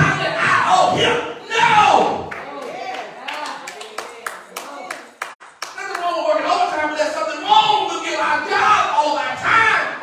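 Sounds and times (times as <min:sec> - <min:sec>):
congregation hand claps: 0:02.2 - 0:06.3.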